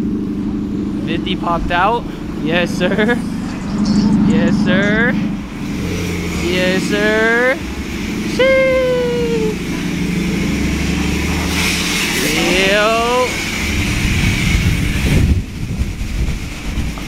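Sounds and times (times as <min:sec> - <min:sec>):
car engine rumbling low: 0:00.0 - 0:17.0
person shouting: 0:08.3 - 0:09.6.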